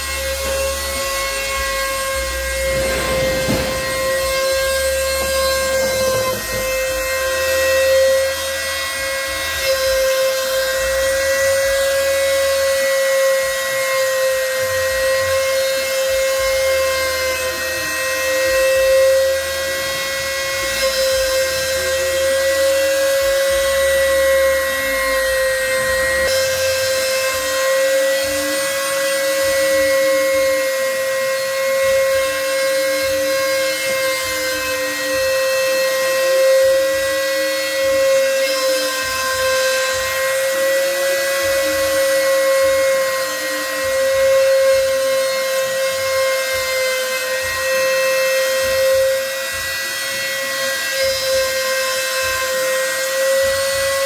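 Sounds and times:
router spindle whine milling wood: 5.2 - 54.0.

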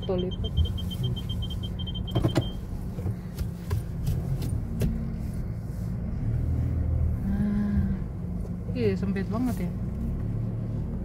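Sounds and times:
rapid electronic beeping: 0.0 - 2.6
car engine running low: 0.0 - 11.0.

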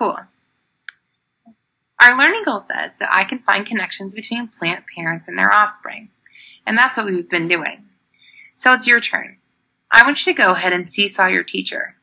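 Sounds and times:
woman talking: 0.0 - 0.2, 2.0 - 7.8, 8.4 - 9.3, 9.9 - 12.0.

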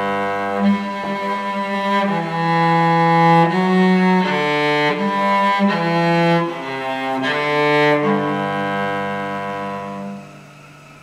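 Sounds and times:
cello bowed note: 0.0 - 11.0.

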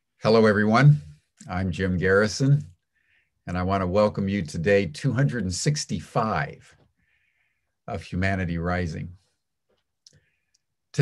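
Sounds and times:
man's voice: 0.2 - 2.7, 3.4 - 6.8, 7.9 - 9.2.

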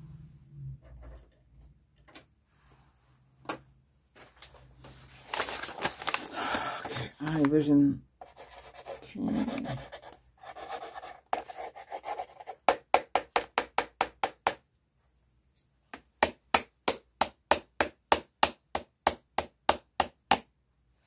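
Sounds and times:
rubbing or scratching: 8.2 - 12.6.

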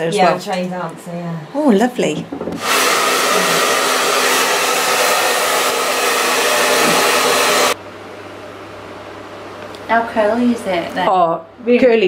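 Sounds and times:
hair dryer running: 2.6 - 7.8.

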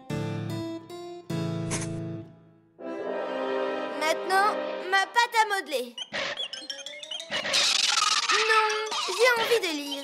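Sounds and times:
light cartoon music: 0.0 - 10.0.

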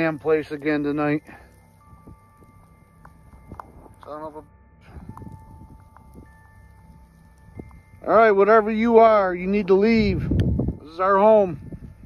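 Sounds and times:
faint chimes ringing: 0.0 - 12.0
low rumble: 0.2 - 12.0.

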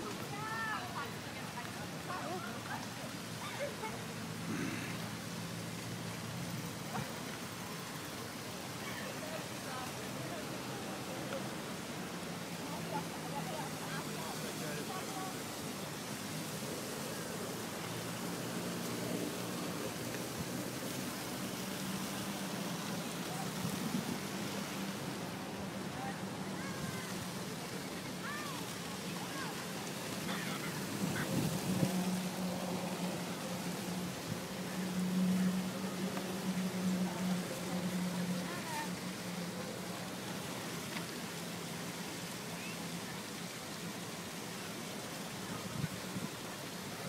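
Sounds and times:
voices in background: 0.0 - 47.0
wind rushing over microphone: 30.8 - 34.6.

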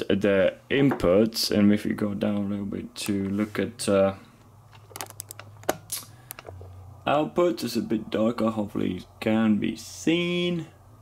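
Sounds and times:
low steady hum: 0.0 - 11.0
short sharp clicks: 5.0 - 6.4.

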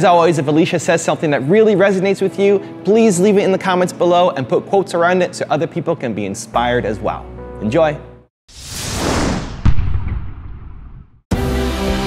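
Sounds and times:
whoosh: 8.5 - 11.2
deep boom hit: 8.8 - 11.2.

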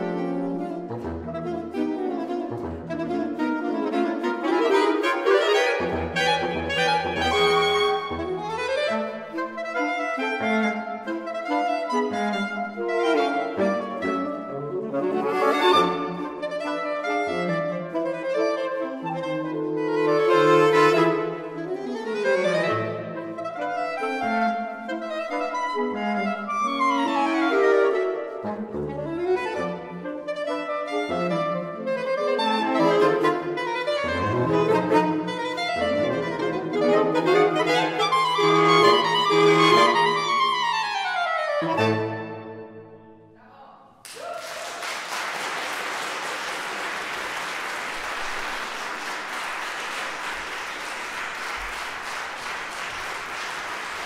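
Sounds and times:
saxophone quartet playing tango: 0.0 - 43.3.

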